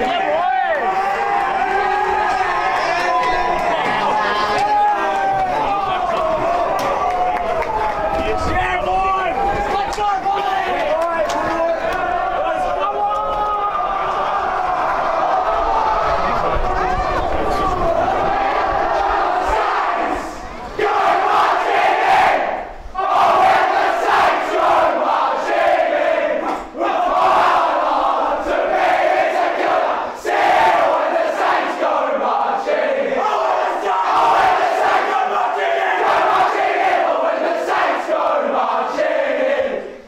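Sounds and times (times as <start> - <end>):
group singing and shouting in unison: 17.8 - 40.0.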